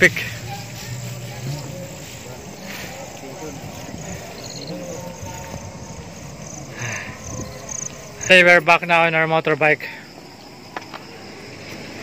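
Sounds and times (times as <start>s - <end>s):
night insects chirping: 0.0s - 12.0s.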